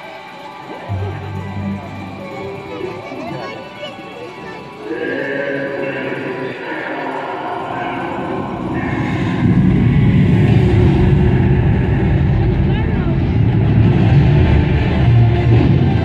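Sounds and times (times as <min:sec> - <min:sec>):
music over outdoor speakers: 0:00.0 - 0:07.5
voices over speakers: 0:00.0 - 0:16.0
heavy low rumble: 0:07.4 - 0:16.0.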